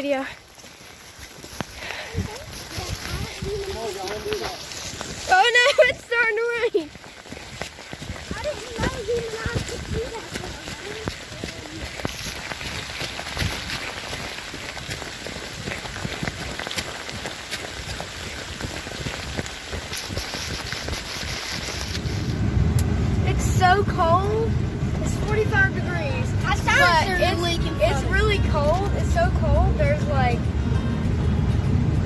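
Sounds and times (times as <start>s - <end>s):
patter and handling noise: 18.3s - 22.3s
vehicle engine humming: 20.8s - 32.0s.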